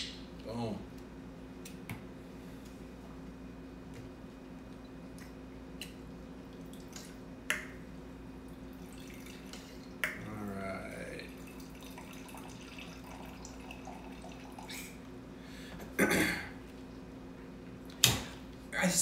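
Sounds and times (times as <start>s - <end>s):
wine trickling into a glass: 10.9s - 14.9s.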